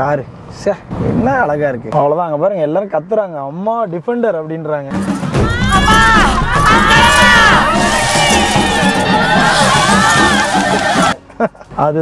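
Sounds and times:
music: 4.9 - 12.0
crowd of women crying out: 5.0 - 11.2.

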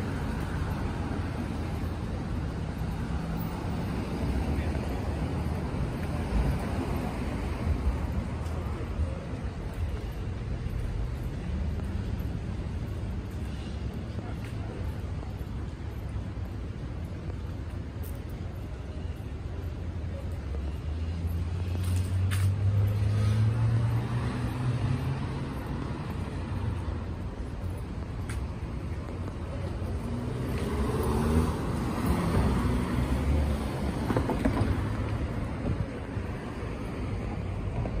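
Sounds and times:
steady road noise: 0.0 - 38.0
vehicles driving past: 0.0 - 38.0.

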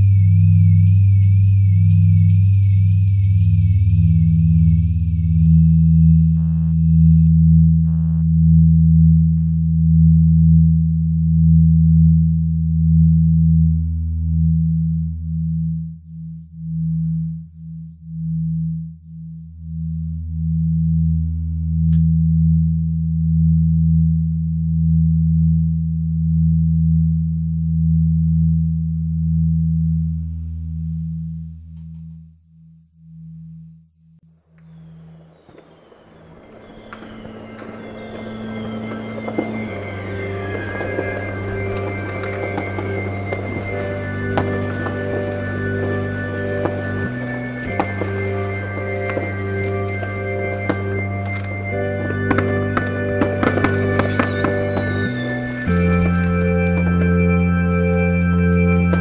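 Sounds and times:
electronic drone tones: 0.0 - 59.0.

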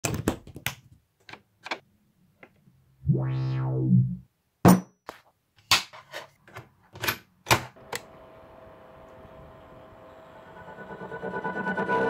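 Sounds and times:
synthesizer note: 3.0 - 4.3.

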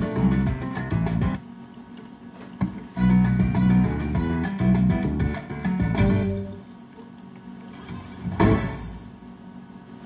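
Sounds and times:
slot machine tune: 3.0 - 6.7.

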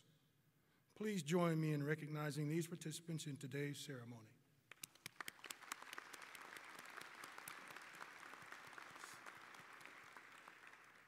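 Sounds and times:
small crowd clapping: 4.7 - 11.0.

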